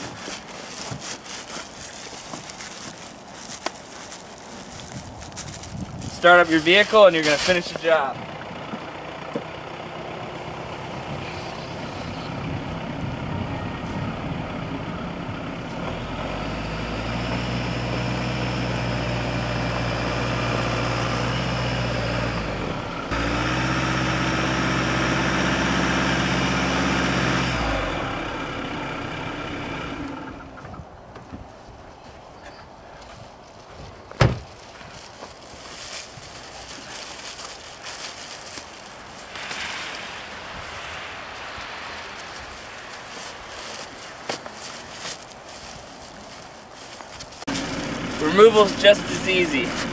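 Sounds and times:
vehicle engine running: 6.2 - 30.7, 47.3 - 49.9.

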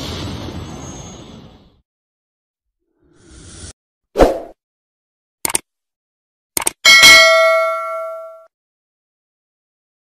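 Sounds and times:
short clicks: 5.4 - 5.7, 6.6 - 6.8
notification bell ding: 6.9 - 8.5.

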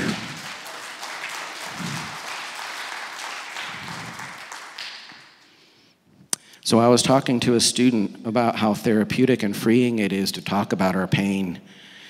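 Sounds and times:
congregation applauding: 0.0 - 5.5.

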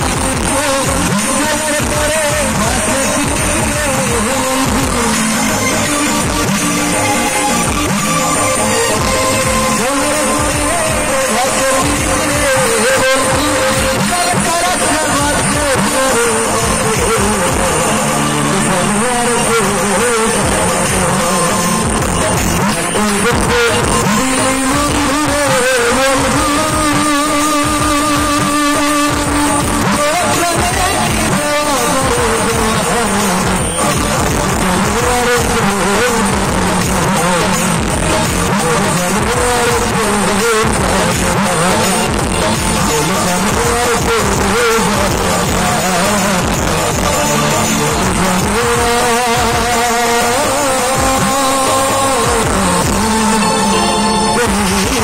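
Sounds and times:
man singing into microphone: 0.0 - 55.0.

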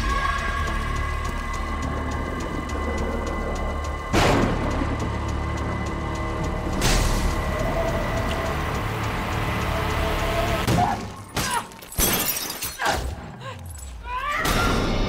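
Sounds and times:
steady low drone: 0.0 - 10.7
tense music: 0.0 - 11.5.

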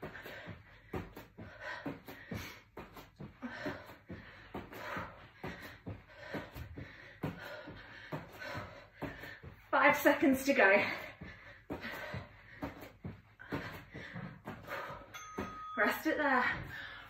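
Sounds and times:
heavy breathing: 0.0 - 9.7, 10.5 - 17.0
bare feet thudding on mat: 0.0 - 17.0.

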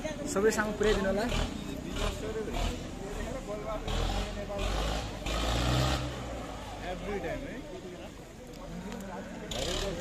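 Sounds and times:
people talking: 0.0 - 10.0
road noise: 0.0 - 10.0
vehicle engine rumble: 0.0 - 10.0.

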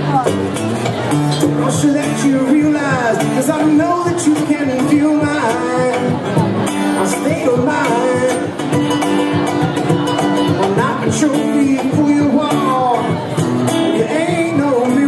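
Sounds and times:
two acoustic guitars playing: 0.0 - 15.0.

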